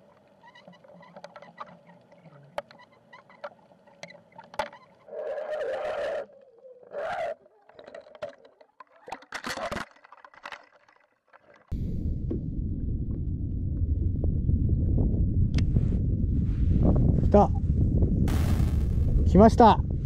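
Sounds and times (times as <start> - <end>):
faint underwater clicks and knocks: 0.0 - 5.1, 6.3 - 12.5.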